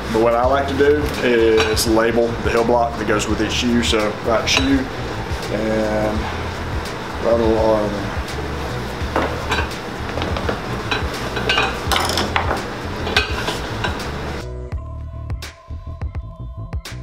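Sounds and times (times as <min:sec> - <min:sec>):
background music: 0:00.0 - 0:17.0
metal tools clinking on wood: 0:10.3 - 0:14.0.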